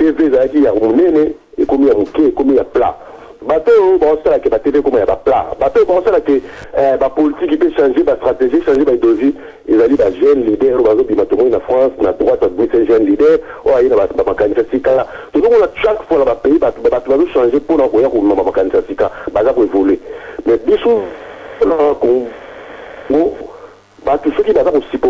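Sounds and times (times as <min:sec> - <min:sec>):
person talking over telephone: 0:00.0 - 0:25.0.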